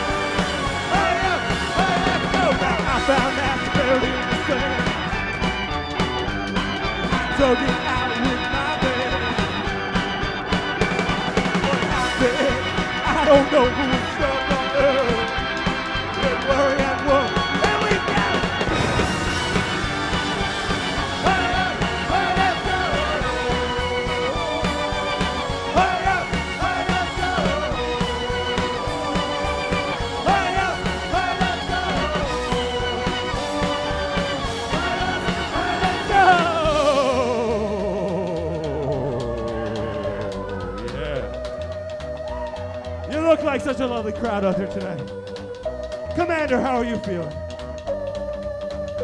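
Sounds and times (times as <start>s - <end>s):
live rock band playing: 0.0s - 49.0s
pulsing bass line: 0.0s - 49.0s.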